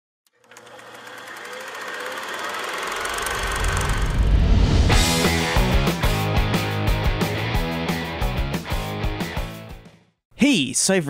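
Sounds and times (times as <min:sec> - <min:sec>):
fast buzzing rattle: 0:00.3 - 0:06.3
deep rumble: 0:03.2 - 0:05.9.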